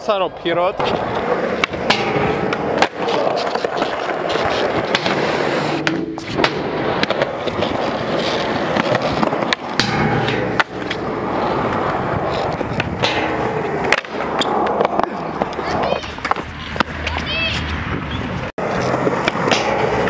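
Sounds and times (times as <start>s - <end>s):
skateboard wheels rolling on concrete: 0.0s - 20.0s
skateboard clacking: 0.8s - 20.0s.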